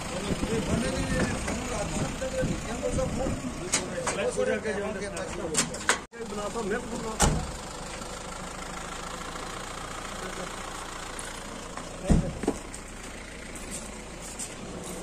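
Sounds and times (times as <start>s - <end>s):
vehicle engine idling: 0.0s - 5.2s, 6.2s - 15.0s.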